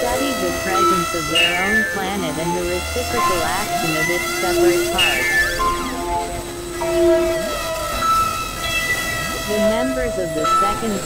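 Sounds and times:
gliding synth tone: 0.0 - 11.0
synthesizer drone: 0.0 - 11.0.

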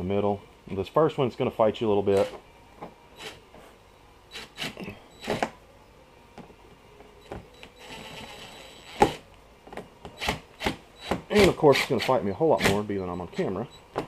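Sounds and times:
cordless drill driving screw: 3.2 - 3.4, 4.3 - 5.5, 7.6 - 9.2, 10.2 - 12.8.

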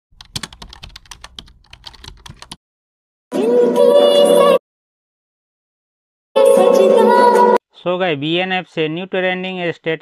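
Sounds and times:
keyboard typing: 0.2 - 2.6.

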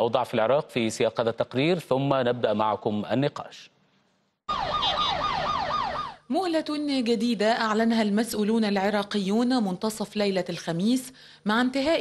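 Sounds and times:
siren in fast yelp: 4.5 - 6.3.

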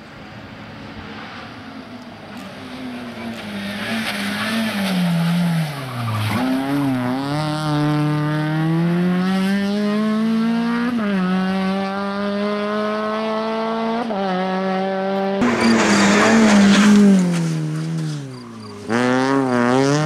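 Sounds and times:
rally car engine revving: 2.3 - 20.0.

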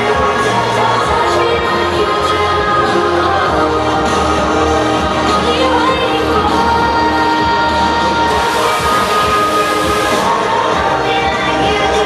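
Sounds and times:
loud dance music: 0.0 - 12.0
confetti cannon hiss: 8.3 - 10.4.

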